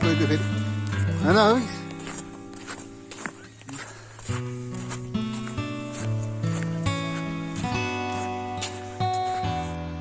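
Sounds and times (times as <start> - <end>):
soft instrumental music: 0.0 - 10.0.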